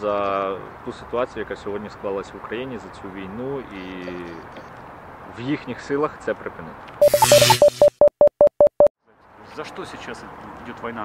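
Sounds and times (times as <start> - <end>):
short electronic beeps: 7.0 - 8.9.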